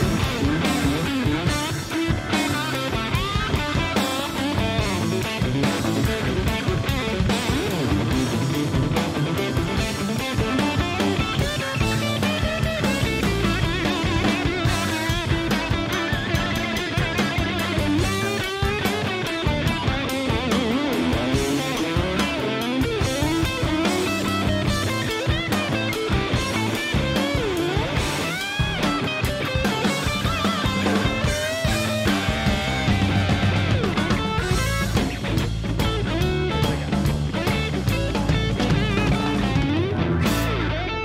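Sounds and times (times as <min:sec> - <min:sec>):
drum kit: 0:00.0 - 0:41.0
electric guitar solo: 0:00.0 - 0:41.0.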